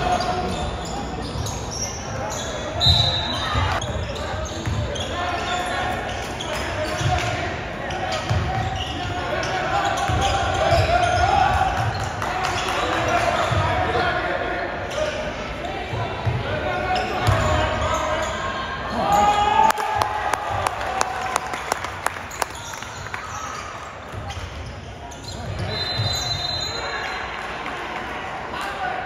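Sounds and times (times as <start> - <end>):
voices echoing in gym: 0.0 - 29.0.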